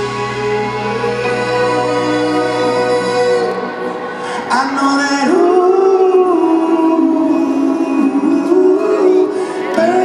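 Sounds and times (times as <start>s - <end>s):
live rock band: 0.0s - 10.0s
male vocal singing: 0.0s - 10.0s.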